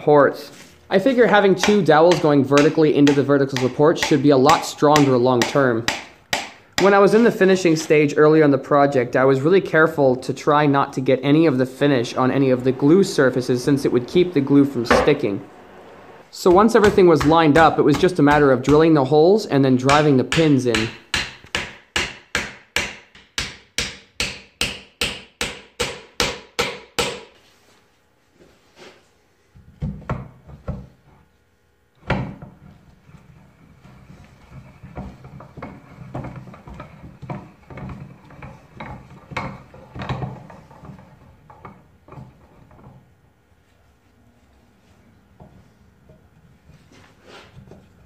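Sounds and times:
hammer striking pins into wood: 1.5s - 7.0s, 19.8s - 27.4s.

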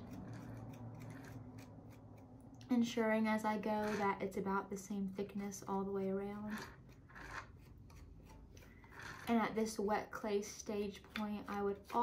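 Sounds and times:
tool scraping wet clay: 0.0s - 4.6s, 6.1s - 9.9s, 10.6s - 12.0s.

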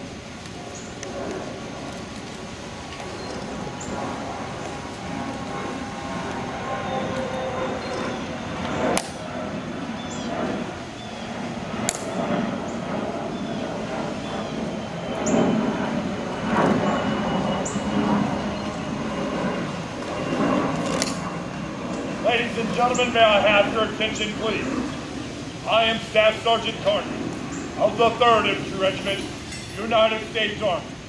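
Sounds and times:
outdoor background rumble: 0.0s - 31.0s.

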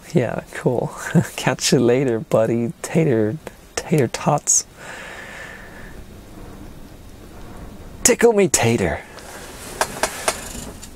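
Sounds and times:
faint background hiss: 0.0s - 10.9s.

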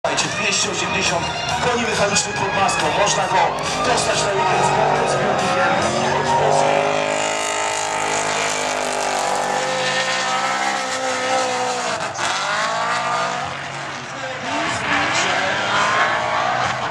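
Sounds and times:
car engine at high revs: 2.8s - 16.9s.

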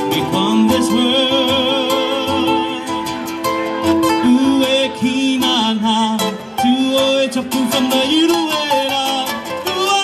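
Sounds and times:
acoustic guitar and plucked strings: 0.0s - 10.0s.

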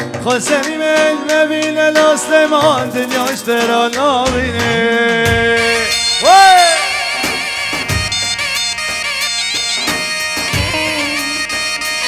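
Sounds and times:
heavy drum strikes: 3.9s - 8.6s, 10.5s - 11.2s
dance music with reedy wind melody: 4.3s - 12.0s.

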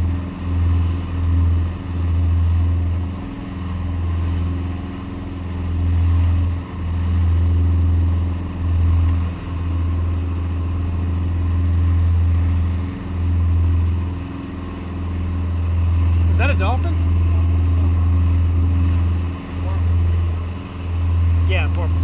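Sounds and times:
boat engine droning: 0.0s - 22.0s
wake and wind noise: 0.0s - 22.0s.

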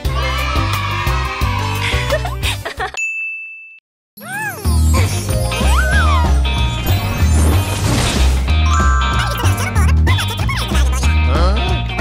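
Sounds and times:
upbeat music with steady bass: 8.6s - 12.0s.

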